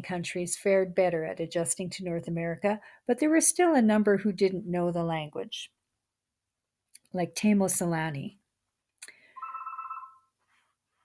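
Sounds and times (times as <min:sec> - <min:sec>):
short trilling tone: 0:09.4 - 0:10.3.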